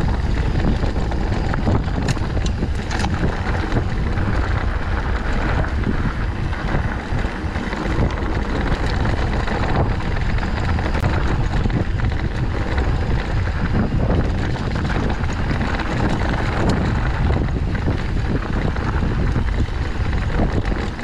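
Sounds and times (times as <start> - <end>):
tyres on dirt and loose rock: 0.0 - 21.0
wind rushing over microphone: 0.0 - 21.0.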